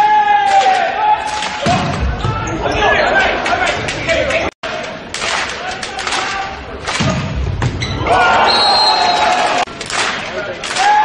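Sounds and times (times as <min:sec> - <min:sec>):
crowd shouting and cheering: 0:00.0 - 0:11.0
volleyball ball contacts: 0:05.2 - 0:08.4.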